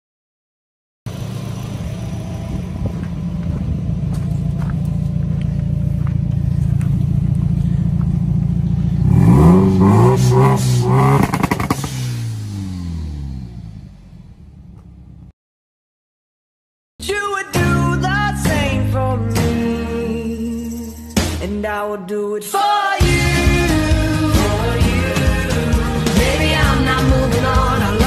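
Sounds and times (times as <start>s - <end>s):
turbocharged engine revving: 1.1s - 15.3s, 23.0s - 28.0s.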